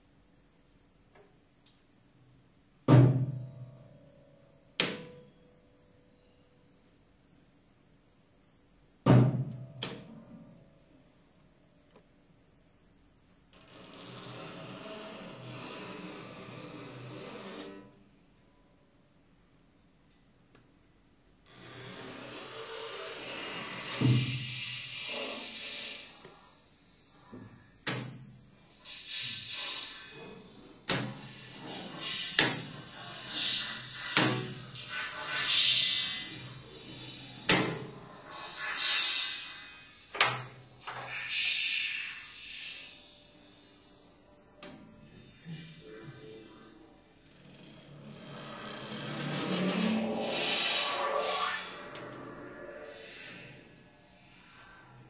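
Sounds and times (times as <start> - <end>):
hissing noise: 22.6 - 55.0
piano strings being scraped: 45.1 - 53.5.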